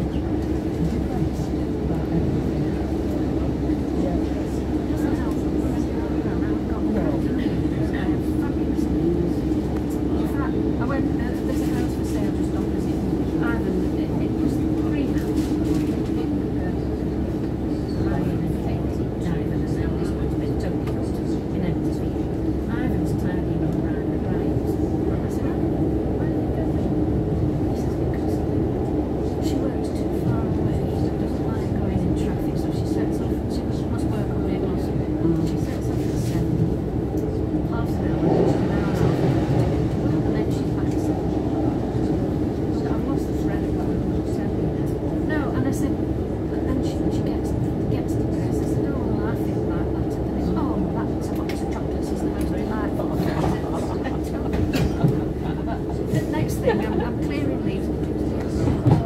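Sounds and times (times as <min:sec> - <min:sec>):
wheels rumbling on rail: 0:00.0 - 0:59.0.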